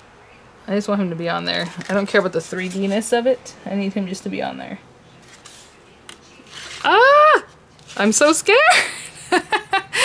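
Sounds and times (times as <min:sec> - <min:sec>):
woman exclaiming: 0:06.8 - 0:07.5.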